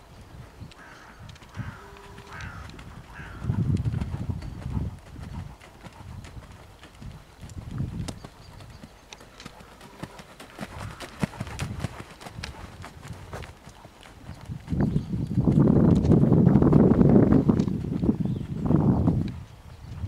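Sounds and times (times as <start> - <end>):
horse hoofbeats on soft ground: 0.8 - 20.0.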